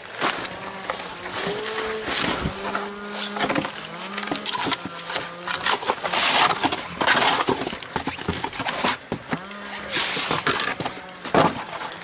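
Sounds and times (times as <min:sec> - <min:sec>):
crunching and rustling: 0:00.0 - 0:12.0.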